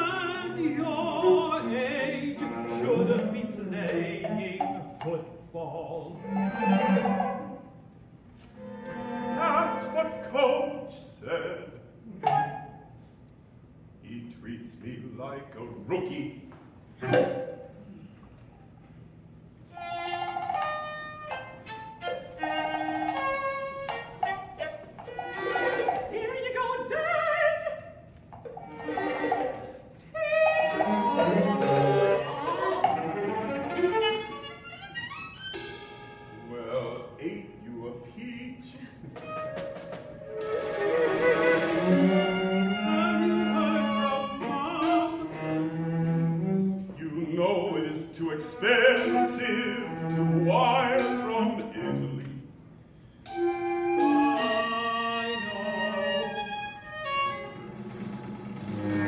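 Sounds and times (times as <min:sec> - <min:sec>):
male operatic singing: 0:00.0 - 0:07.3, 0:09.3 - 0:11.8, 0:25.9 - 0:28.0, 0:42.8 - 0:45.4, 0:46.4 - 0:52.4, 0:54.1 - 0:56.5
cello: 0:00.0 - 0:07.8, 0:08.4 - 0:10.4, 0:19.6 - 0:26.1, 0:28.3 - 0:36.6, 0:39.1 - 0:52.5, 0:53.2 - 0:59.0
bowed strings ensemble: 0:00.0 - 0:10.9, 0:12.0 - 0:13.0, 0:19.6 - 0:52.5, 0:53.2 - 0:59.0
violin: 0:00.0 - 0:10.9, 0:19.6 - 0:52.5, 0:53.3 - 0:59.0.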